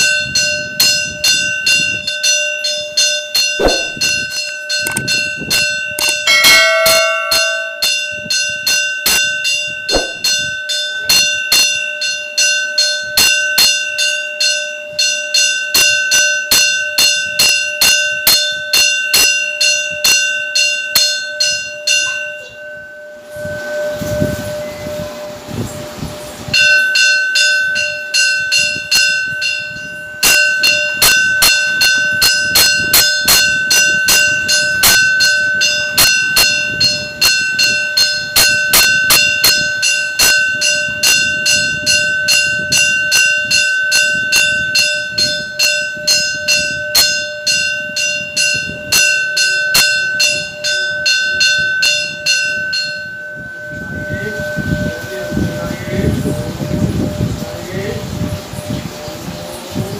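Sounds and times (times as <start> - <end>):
metal temple bell ringing: 0.0 - 59.9.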